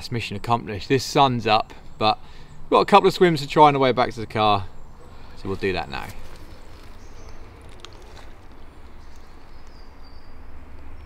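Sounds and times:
river water swirling: 5.1s - 10.0s.

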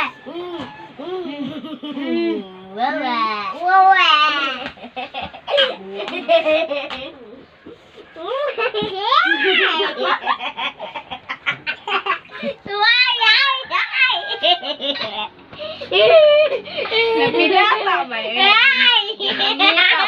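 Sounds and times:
young children laughing: 0.0s - 2.7s, 4.3s - 17.4s, 19.0s - 20.0s.

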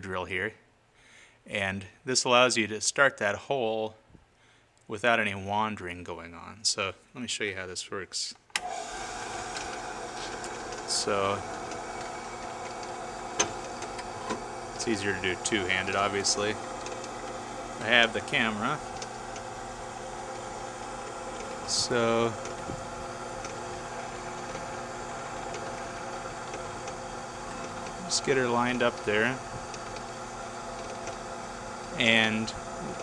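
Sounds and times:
drill press motor humming: 8.6s - 33.0s.

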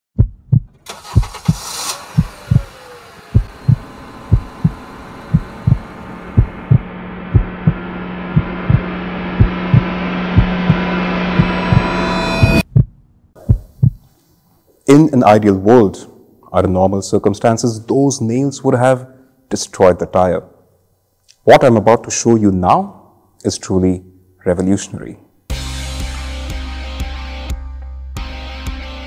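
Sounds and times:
deep heartbeat-like thumps: 0.2s - 14.0s
drone: 1.9s - 12.7s.

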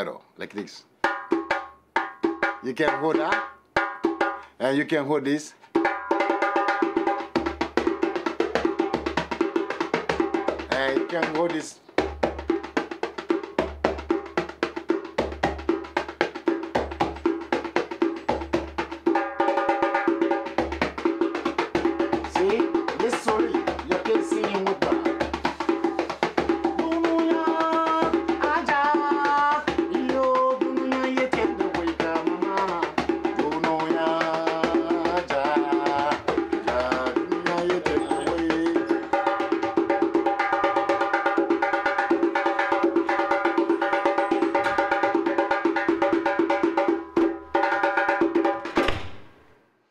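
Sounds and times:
djembe drumming: 1.0s - 4.5s, 5.7s - 48.9s
man singing: 22.2s - 25.4s, 26.3s - 39.5s.

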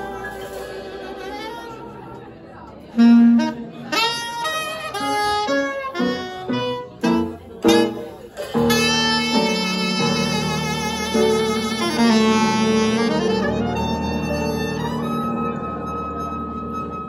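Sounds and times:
wind instrument playing jazz: 0.0s - 2.3s, 2.9s - 17.0s.

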